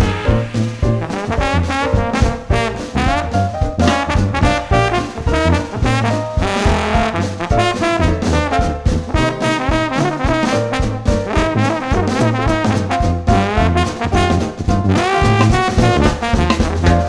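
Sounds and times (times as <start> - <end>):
jazz band playing: 0.0 - 17.0.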